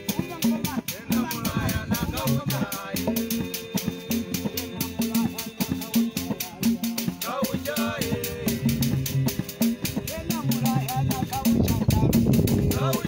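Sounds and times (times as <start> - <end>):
low repeated bass notes: 0.0 - 6.7, 7.6 - 13.0
person singing: 0.0 - 9.0, 9.8 - 13.0
steady rattle rhythm: 0.0 - 13.0.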